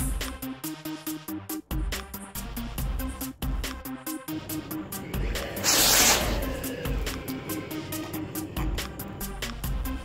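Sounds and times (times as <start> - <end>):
rocket launch hissing rush: 4.4 - 9.0.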